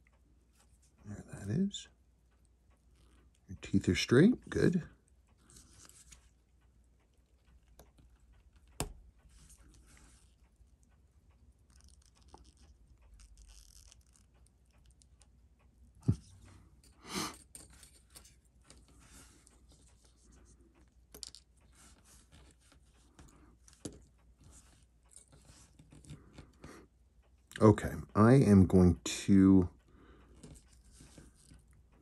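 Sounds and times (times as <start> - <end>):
tweezers rustling and clicking: 5.3 - 15.4, 16.1 - 26.7, 30.3 - 32.0.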